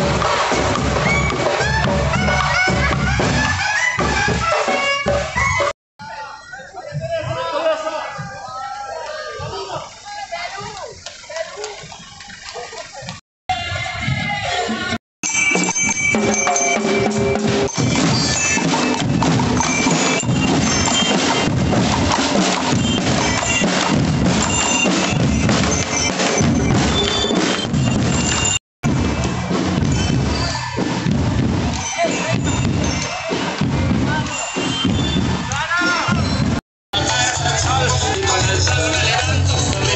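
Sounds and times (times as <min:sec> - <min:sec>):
marching drum cadence: 0:00.0 - 0:05.7, 0:09.4 - 0:39.9
bell lyres ringing high notes: 0:15.2 - 0:21.5, 0:22.7 - 0:28.6, 0:31.6 - 0:35.2.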